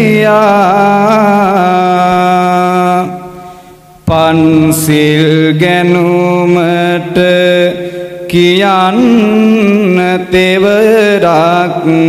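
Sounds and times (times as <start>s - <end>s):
person chanting: 0.0s - 12.0s.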